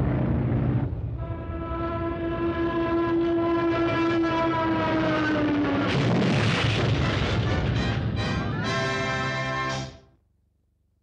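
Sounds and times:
rushing noisy crash: 5.6 - 8.5.

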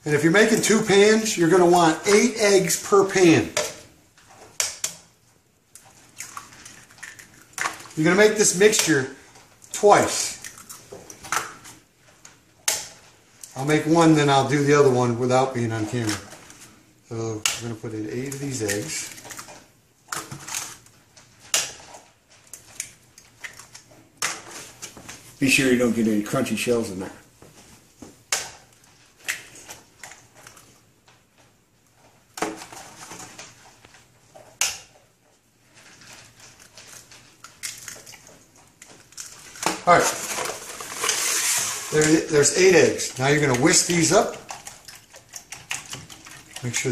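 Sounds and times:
eggs cracking: 0.1 - 25.0, 28.2 - 31.0, 35.8 - 46.9
eggshells cracking: 5.8 - 9.0, 9.6 - 11.7, 36.2 - 46.9.

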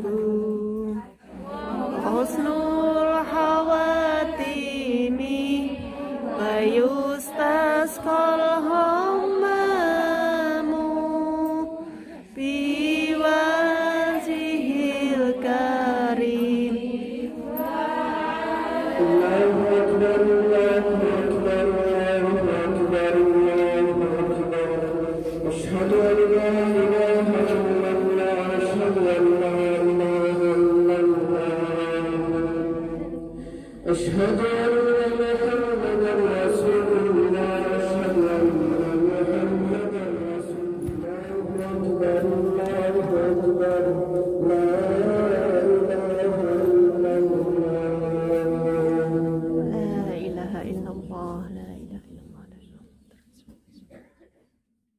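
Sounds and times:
man chanting prayer: 0.0 - 54.0
soft whispering and murmuring: 49.6 - 54.6.

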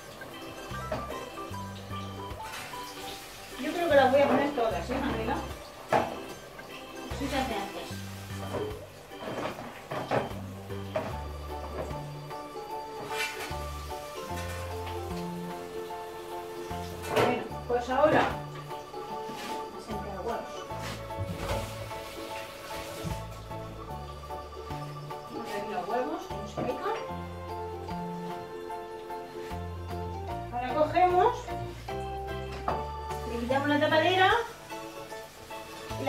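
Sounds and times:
kitchenware clattering: 0.0 - 1.6, 2.2 - 15.4, 16.7 - 23.4
background music with bass line: 10.0 - 36.0.

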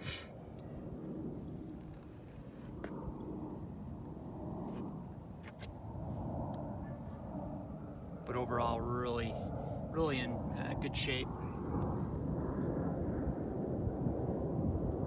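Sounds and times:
low outdoor rumble: 0.0 - 15.0.

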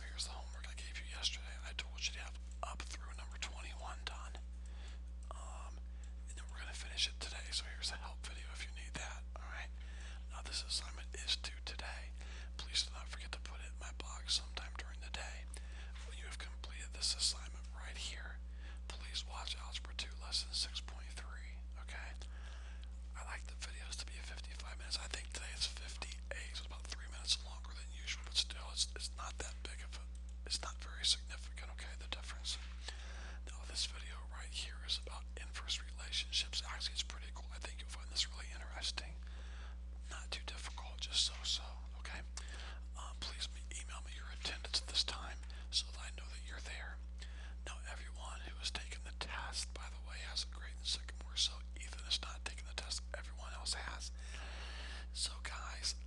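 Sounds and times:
faint whispery voice: 0.0 - 4.5, 5.2 - 22.3, 23.1 - 39.2, 40.0 - 47.0, 47.6 - 54.2, 55.1 - 56.0
low electrical hum: 0.0 - 56.0.

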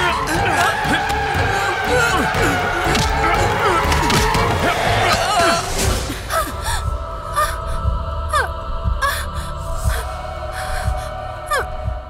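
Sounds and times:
tense film score drone: 0.0 - 12.0.

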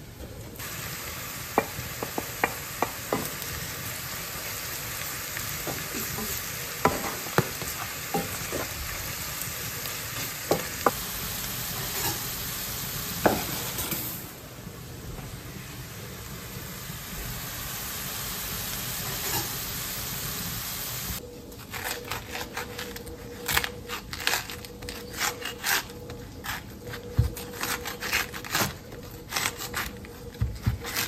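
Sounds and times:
vegetables sizzling in frying pan: 0.6 - 21.2.

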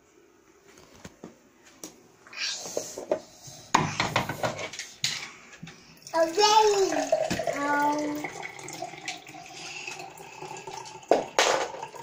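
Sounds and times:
toddler vocalizing: 6.2 - 8.3.

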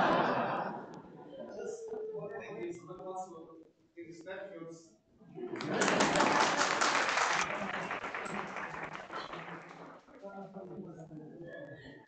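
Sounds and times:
audience applauding: 5.6 - 10.3.

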